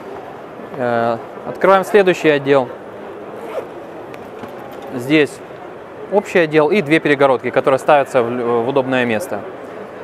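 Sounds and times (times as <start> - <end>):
zipper rasp: 3.4 - 5.0.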